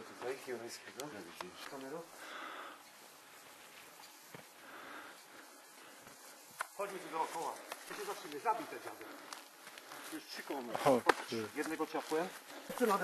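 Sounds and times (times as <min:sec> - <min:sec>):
people speaking: 0:00.0 - 0:02.1, 0:06.8 - 0:09.2, 0:10.1 - 0:13.0.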